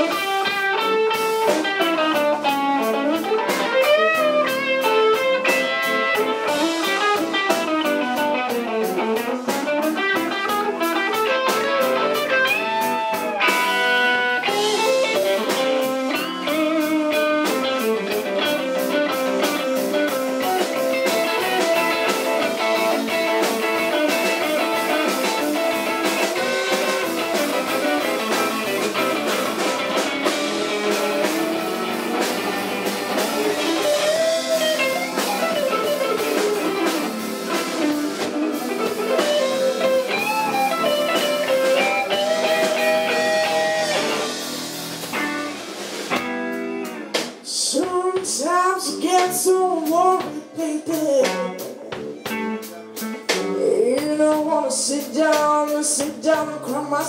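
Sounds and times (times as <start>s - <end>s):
electric guitar bending notes: 0.0s - 47.5s, 51.2s - 54.0s
blues band playing: 0.0s - 57.0s.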